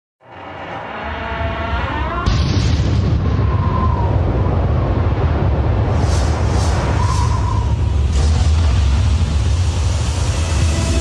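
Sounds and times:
boom with deep rumble: 2.3s - 11.0s
rising tonal swell: 6.0s - 11.0s.

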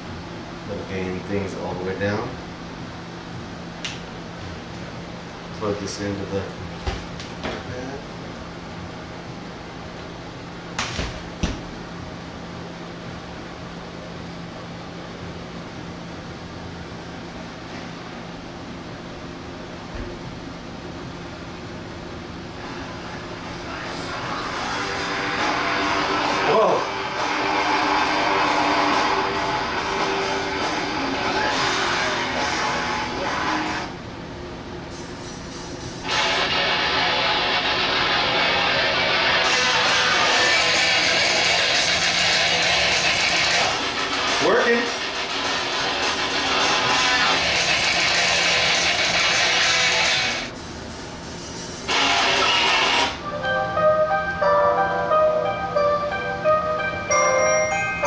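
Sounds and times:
music from small speaker: 24.0s - 33.7s, 51.9s - 58.0s
chiming melody: 53.3s - 58.0s.

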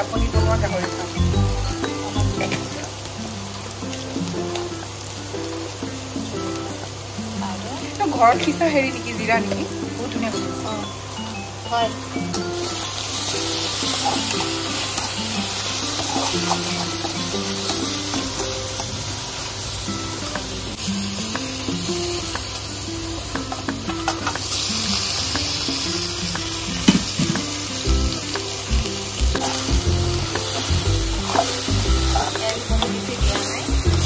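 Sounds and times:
onions sizzling in hot oil: 0.0s - 34.0s
spatula knocking and scraping pan: 31.2s - 34.0s.

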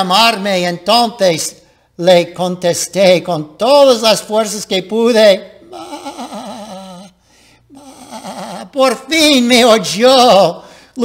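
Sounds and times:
man imitating lamb bleat: 5.6s - 9.1s.

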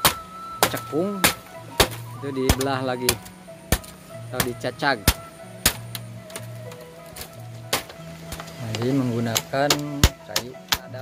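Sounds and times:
hatchet chopping bamboo: 0.0s - 11.0s.

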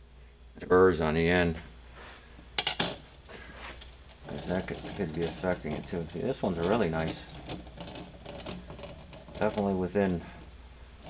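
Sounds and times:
rod rolling across glass: 4.1s - 10.5s.

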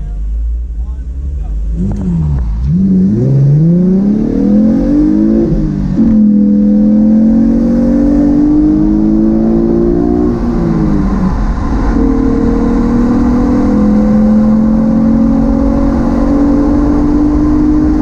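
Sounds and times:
car engine accelerating hard: 0.0s - 18.0s.

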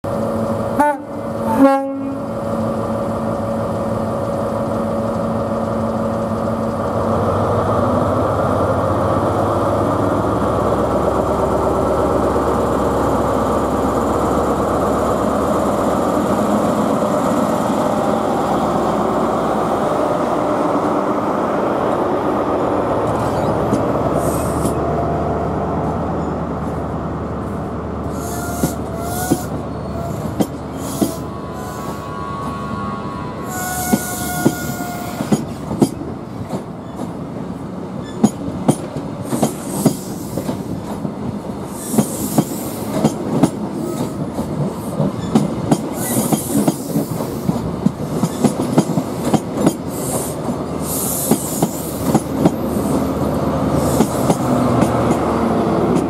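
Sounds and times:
diesel locomotive engine: 0.0s - 56.0s
train wheel squeal: 23.2s - 24.8s, 28.1s - 36.0s, 38.0s - 38.4s, 39.2s - 40.8s, 41.7s - 43.2s, 43.8s - 47.6s, 49.3s - 53.0s.

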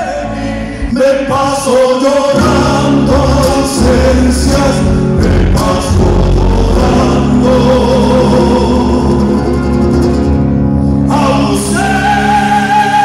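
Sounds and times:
men singing together: 0.0s - 9.5s, 11.1s - 13.0s
acoustic guitars: 0.0s - 13.0s
electric bass: 0.0s - 13.0s
bass drum beating: 2.4s - 10.5s.

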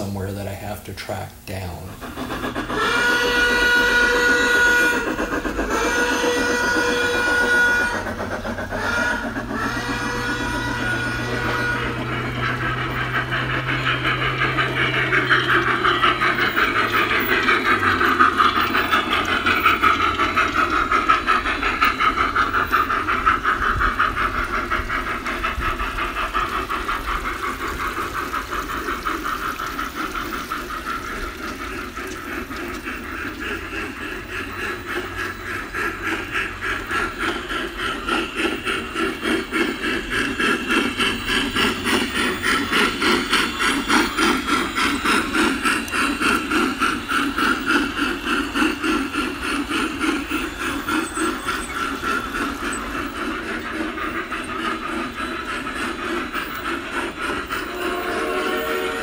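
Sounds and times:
steam locomotive chuffing: 0.0s - 59.0s
chime steam whistle: 2.8s - 25.9s, 33.6s - 59.0s.

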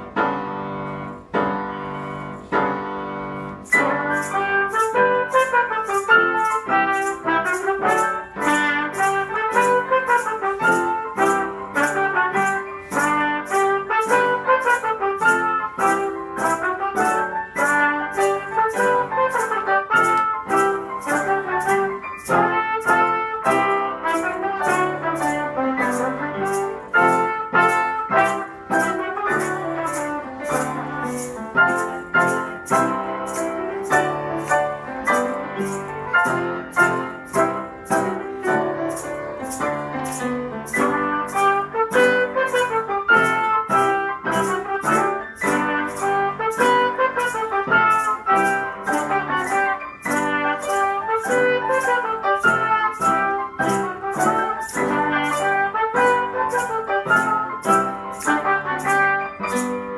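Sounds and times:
piano chords: 0.0s - 59.9s
trumpet melody: 0.0s - 59.9s
maracas shaking: 0.8s - 59.9s.

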